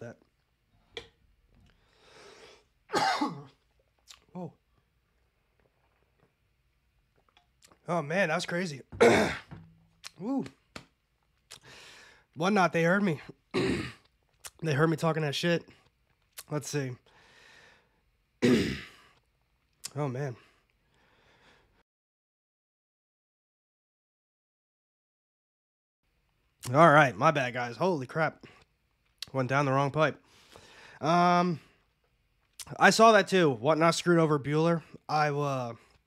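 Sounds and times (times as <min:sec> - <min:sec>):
faint breath: 0:01.7 - 0:02.7, 0:11.6 - 0:12.3, 0:17.1 - 0:18.0, 0:20.8 - 0:21.8, 0:30.2 - 0:31.0
man coughing: 0:02.9 - 0:03.6, 0:09.0 - 0:09.6, 0:13.6 - 0:14.0, 0:18.4 - 0:19.0.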